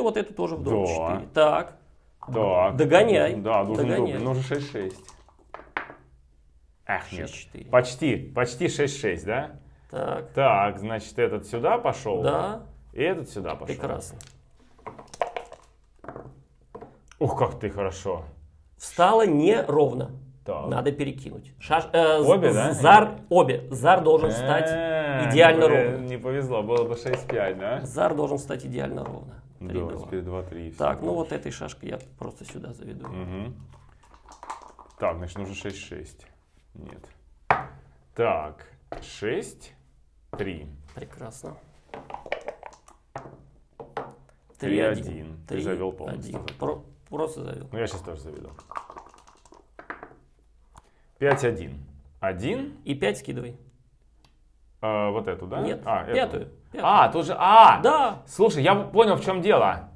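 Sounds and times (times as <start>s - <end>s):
game pieces clicking on board: 4.2s - 6.0s, 14.2s - 17.0s, 33.6s - 35.8s, 42.0s - 44.3s, 47.9s - 50.2s
dice rattled in a cup: 4.6s - 5.9s, 14.2s - 15.8s, 33.7s - 35.6s, 42.0s - 43.1s, 47.9s - 50.2s.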